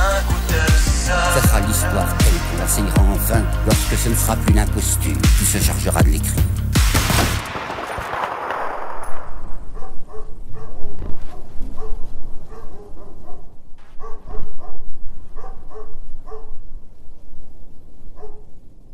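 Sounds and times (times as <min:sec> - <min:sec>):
dog barking: 0:09.7 - 0:16.6, 0:18.1 - 0:18.6.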